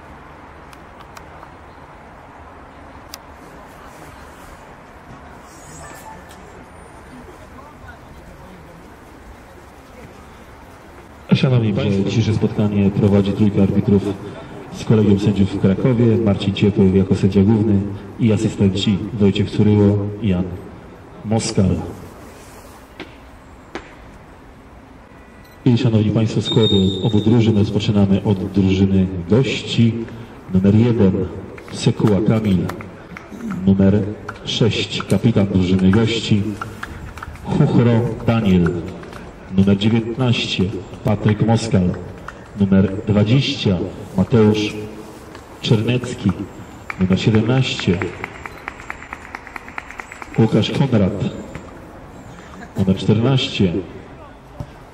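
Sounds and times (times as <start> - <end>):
open-air background noise: 0.0 - 54.9
quick hand claps and slaps: 46.3 - 50.6.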